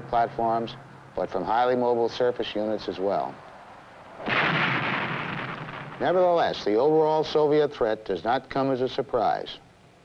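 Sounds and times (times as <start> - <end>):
rocket motor blast: 4.2 - 6.2.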